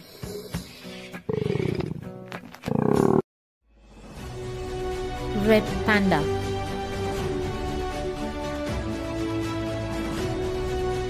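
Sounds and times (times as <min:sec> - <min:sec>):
background music: 0:03.7 - 0:11.0.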